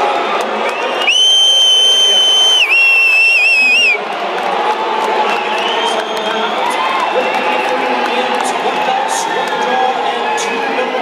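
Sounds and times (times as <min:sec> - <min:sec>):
arena crowd cheering: 0:00.0 - 0:11.0
loud shrill whistle: 0:00.9 - 0:04.0.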